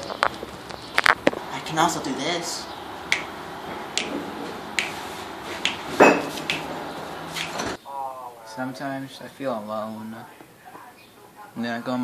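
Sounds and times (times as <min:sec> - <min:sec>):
fingers snapping: 0:03.1 - 0:03.4, 0:04.0 - 0:04.2, 0:04.8 - 0:05.0, 0:05.6 - 0:06.7, 0:07.3 - 0:07.6.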